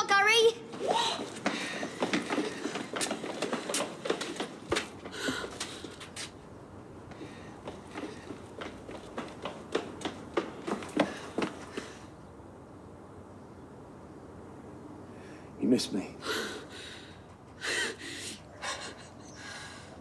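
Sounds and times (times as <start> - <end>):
footsteps on concrete: 0.4 - 12.2.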